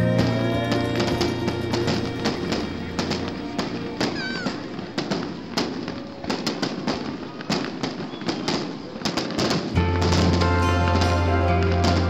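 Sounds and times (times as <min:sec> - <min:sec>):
fireworks bangs and crackles: 0:00.0 - 0:12.0
music with low note: 0:09.8 - 0:12.0.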